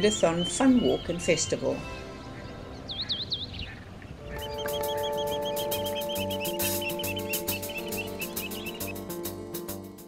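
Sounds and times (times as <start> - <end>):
sustained chords over ticking beat: 4.2 - 10.0
quick chirps: 4.3 - 9.7.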